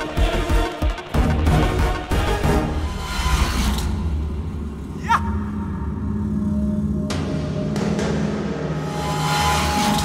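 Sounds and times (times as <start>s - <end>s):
dramatic film score drone: 0.0s - 10.0s.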